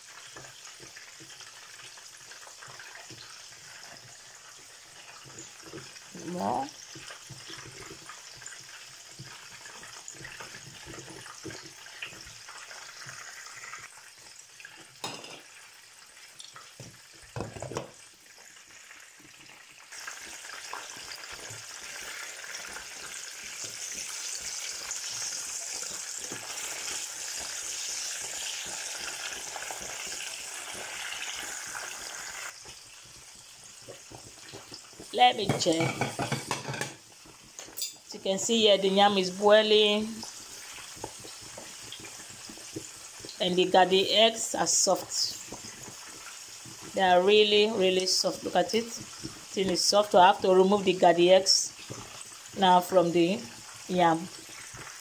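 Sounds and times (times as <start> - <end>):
fish sizzling in hot oil: 0.0 - 55.0.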